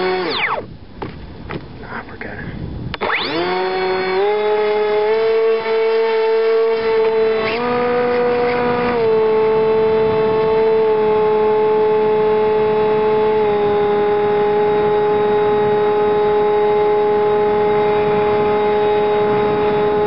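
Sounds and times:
electric motor and propeller whine: 0.0s - 1.8s, 2.6s - 20.0s.

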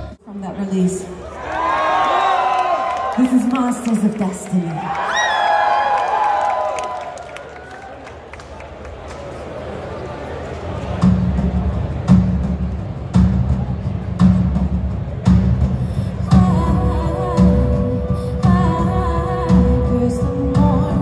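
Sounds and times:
crowd murmur: 7.2s - 20.7s
kick drum beat with bass: 11.0s - 19.9s.

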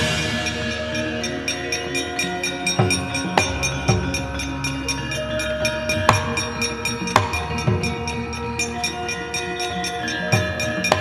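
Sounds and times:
gamelan music: 0.0s - 11.0s.

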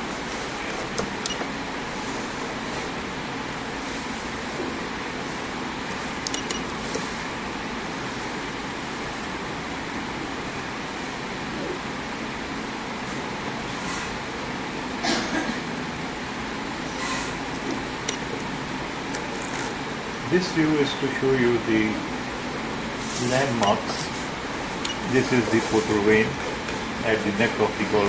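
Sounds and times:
steady background noise: 0.0s - 28.0s.

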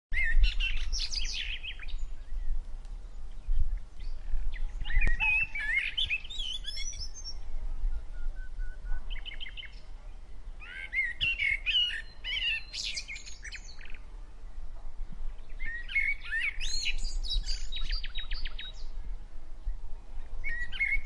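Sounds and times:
songbird twittering: 0.1s - 14.1s, 15.3s - 19.8s, 20.4s - 21.0s
bird whistle: 4.8s - 7.3s, 8.1s - 9.6s.

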